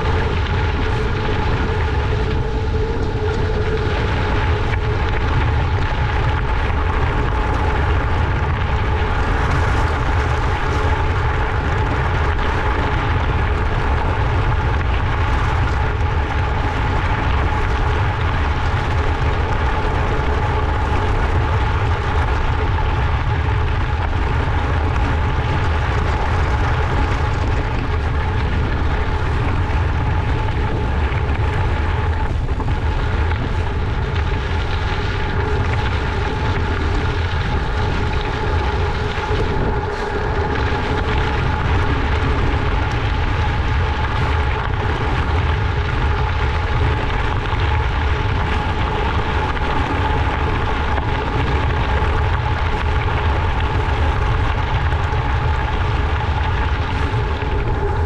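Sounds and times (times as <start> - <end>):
bike tyres rolling on gravel: 0.0 - 58.0
faint constant hum: 0.0 - 58.0
wind buffeting microphone: 0.0 - 58.0.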